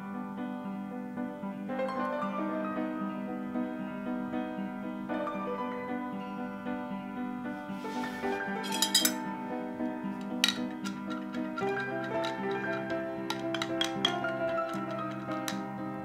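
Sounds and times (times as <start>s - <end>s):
soft piano music: 0.0s - 16.0s
ice clinking in glass: 8.6s - 9.2s, 10.2s - 15.6s.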